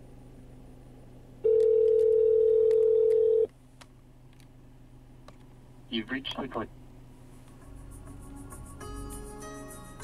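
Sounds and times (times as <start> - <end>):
telephone ringback tone: 1.4 - 3.5.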